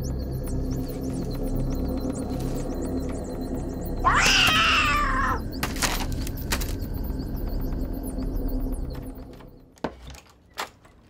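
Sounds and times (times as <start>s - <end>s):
steady low drone: 0.0s - 9.8s
cat meowing: 4.0s - 5.4s.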